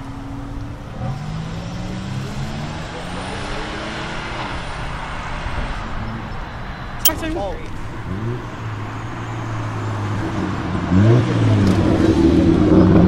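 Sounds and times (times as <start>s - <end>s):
road and traffic noise: 0.0s - 13.0s.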